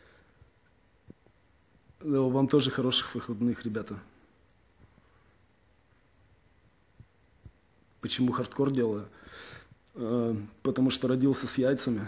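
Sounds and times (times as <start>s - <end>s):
soft low thumps: 6.2s - 8.0s.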